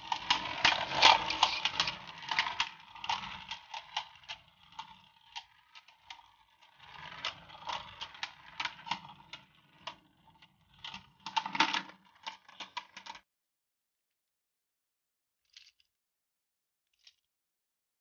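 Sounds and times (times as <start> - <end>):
spinning tops clacking together: 0.0 - 5.0
spinning tops rattling on plastic: 0.0 - 13.2.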